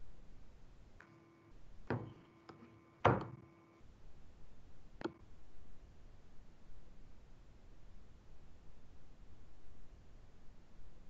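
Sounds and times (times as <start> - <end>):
faint steady hum: 0.0 - 11.0
dull knocks: 1.9 - 3.4.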